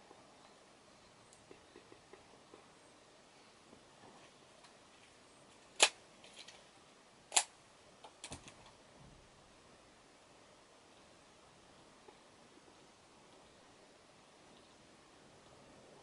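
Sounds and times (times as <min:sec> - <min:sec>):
sharp clicks: 0:07.3 - 0:08.8.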